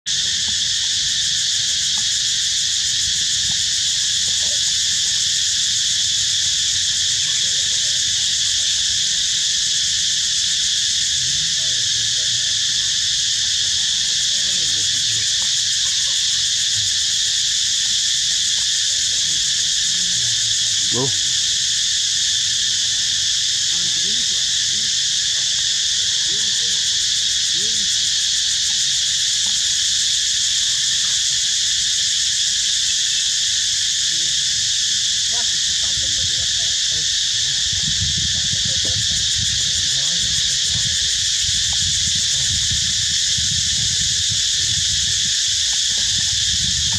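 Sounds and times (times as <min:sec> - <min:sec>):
insects chorus shrill hiss: 0:00.1 - 0:46.9.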